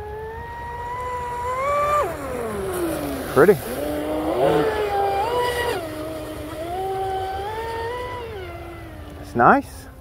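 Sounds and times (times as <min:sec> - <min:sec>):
rc boat motor whine: 0:00.0 - 0:10.0.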